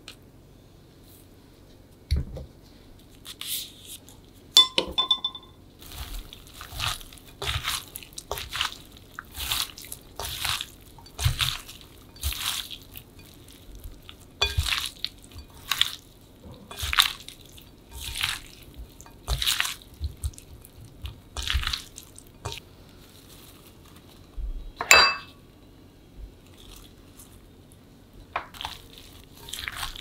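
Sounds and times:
wet rustling of food tossed in bowl: 5.8s - 24.4s, 26.4s - 27.5s, 28.4s - 30.0s.

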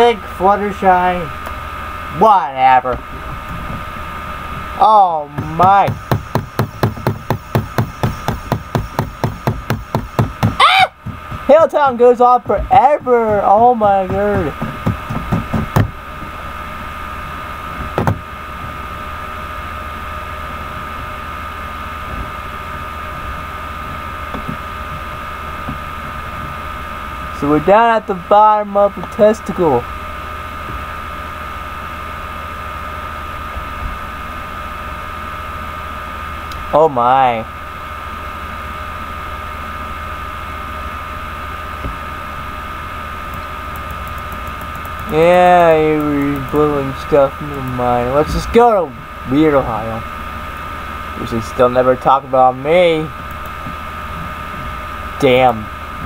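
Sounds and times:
low mains hum: 0.0s - 56.0s
thin high whine: 0.0s - 56.0s
short knocks: 5.3s - 16.0s.

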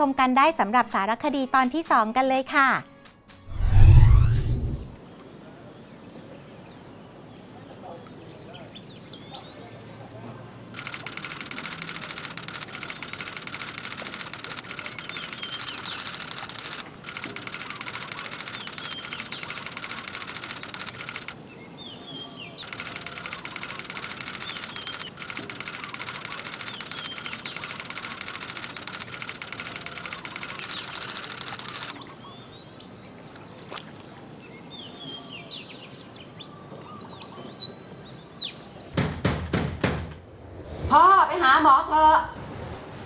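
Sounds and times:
faint birds chirping: 12.1s - 38.9s.

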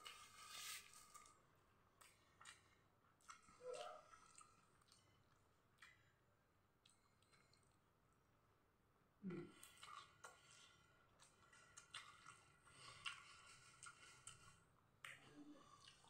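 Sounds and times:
person slurping and chewing noodles: 9.5s - 16.0s.

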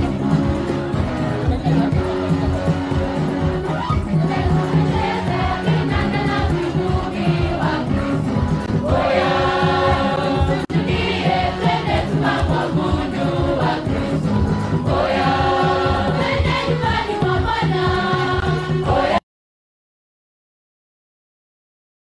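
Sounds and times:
choir singing gospel over beat: 0.0s - 19.2s.

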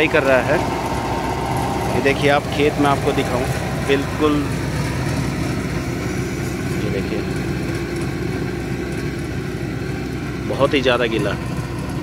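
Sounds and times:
tractor engine under load: 0.0s - 12.0s.

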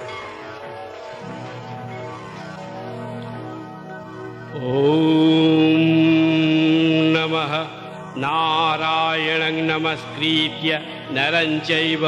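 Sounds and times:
steady musical drone: 0.0s - 12.0s
man chanting: 4.6s - 12.0s.

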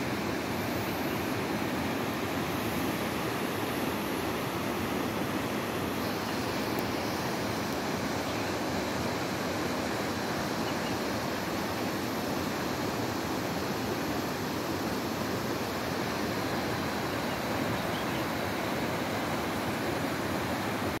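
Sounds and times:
stream and waterfall rushing: 0.0s - 21.0s.

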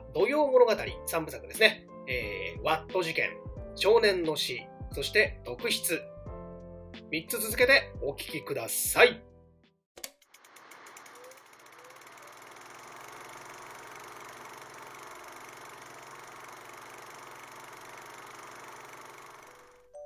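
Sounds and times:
film projector clicking: 10.0s - 20.0s
film projector mechanical whir: 10.0s - 20.0s.

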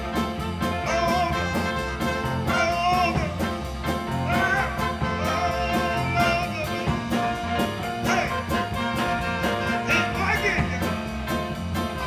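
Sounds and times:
trumpet solo bending notes: 0.0s - 3.5s, 4.2s - 11.2s
blues band playing: 0.0s - 12.0s
steady drum beat: 0.0s - 12.0s.

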